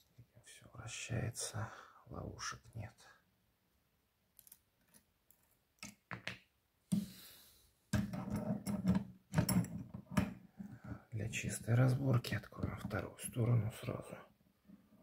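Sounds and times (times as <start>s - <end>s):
padlock and tools clicking and rattling: 8.0s - 10.4s.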